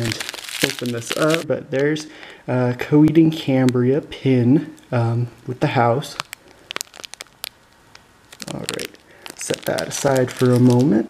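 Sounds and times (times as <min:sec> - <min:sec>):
plastic bag crinkling: 0:00.0 - 0:01.5, 0:06.0 - 0:11.0.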